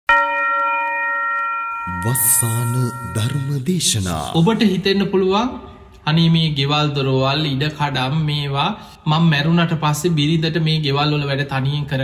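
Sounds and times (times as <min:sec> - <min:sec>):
bell ringing: 0:00.1 - 0:04.7
man speaking: 0:01.9 - 0:06.6.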